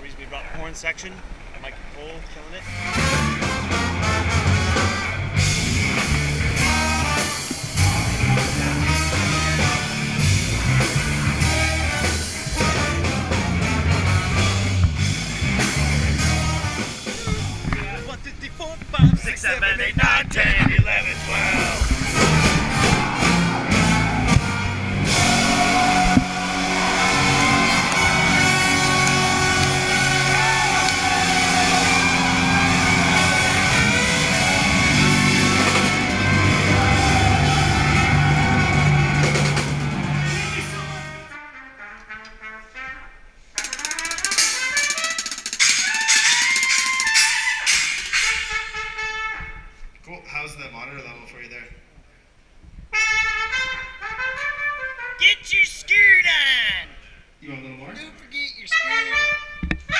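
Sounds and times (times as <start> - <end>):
trumpet and trombone: 2.6 - 14.8, 15.6 - 17.2, 20.6 - 49.8, 52.9 - 55.5, 58.7 - 59.9
heavy rock music: 2.7 - 17.6, 20.7 - 41.3
drums hitting hard: 2.8 - 40.9.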